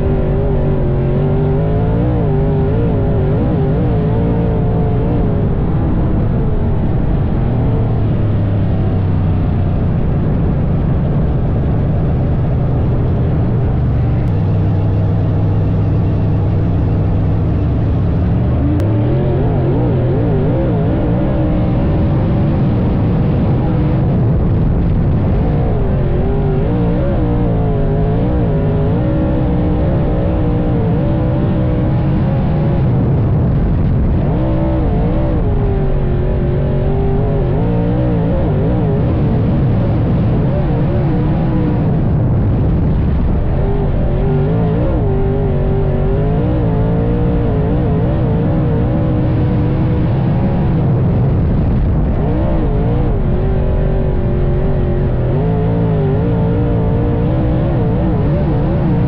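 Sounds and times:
race car engine running hard: 0.0 - 59.0.

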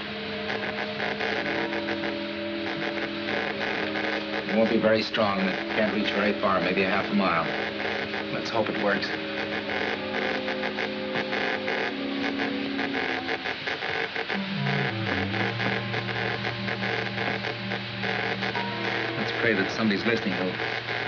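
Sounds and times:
crackle and hiss of old soundtrack: 0.0 - 21.0.

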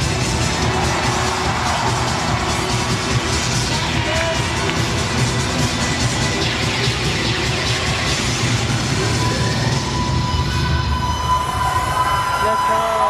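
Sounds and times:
cheerdance music over sound system: 0.0 - 13.0.

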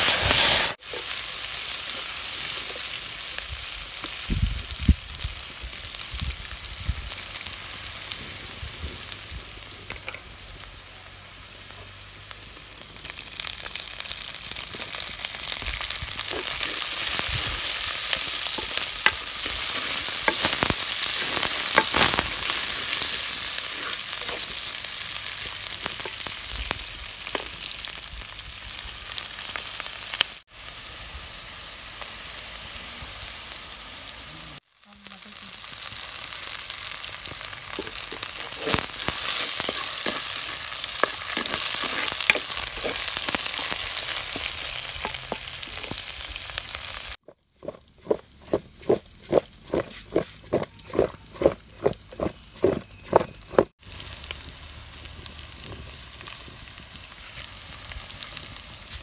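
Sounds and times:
onions sizzling in hot oil: 0.0 - 47.2, 53.7 - 59.0
spoon stirring and scraping: 18.1 - 24.6, 37.7 - 44.4.

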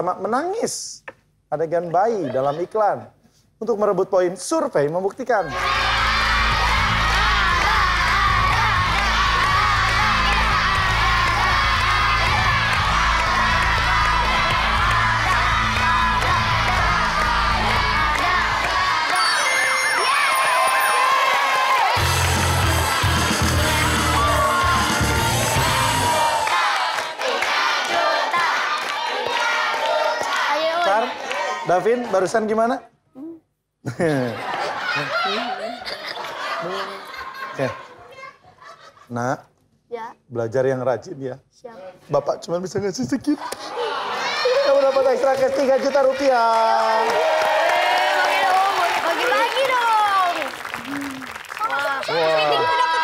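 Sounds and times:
crowd cheering and shouting: 5.4 - 32.0, 43.5 - 53.0
upbeat game show music: 5.5 - 26.4.

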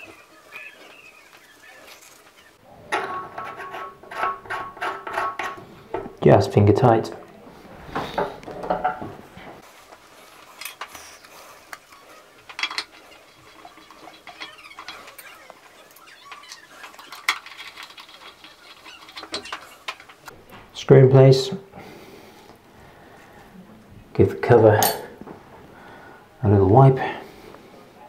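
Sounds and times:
metal tap parts clinking: 12.5 - 15.3, 24.8 - 25.2.

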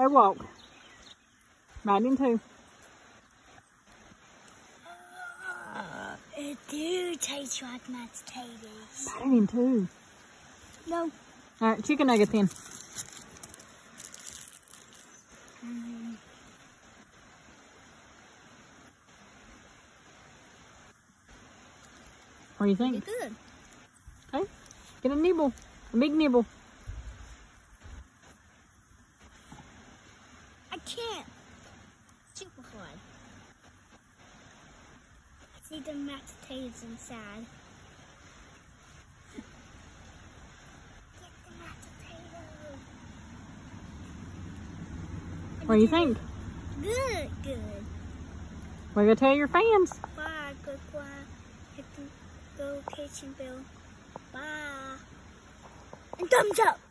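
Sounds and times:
faint background hiss: 0.0 - 56.9
person calling out high-pitched: 4.8 - 7.1.

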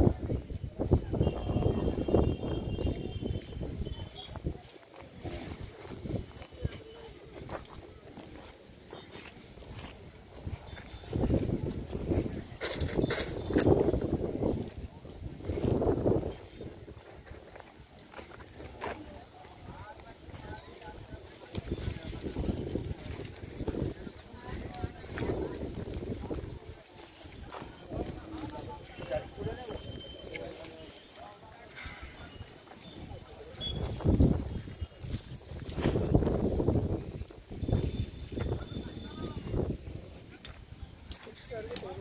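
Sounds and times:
wind rumbling on microphone: 0.0 - 8.5, 9.1 - 30.9, 31.8 - 42.0
people talking: 0.0 - 42.0.

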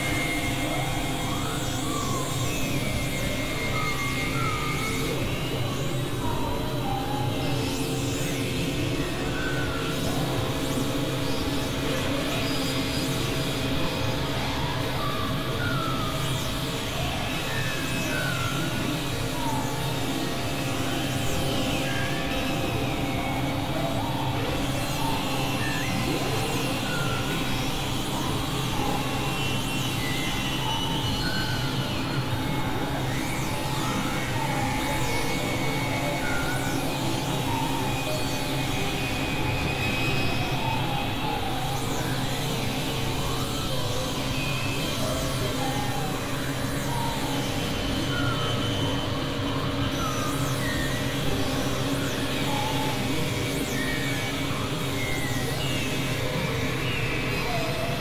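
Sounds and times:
electronic drones: 0.0 - 58.0.

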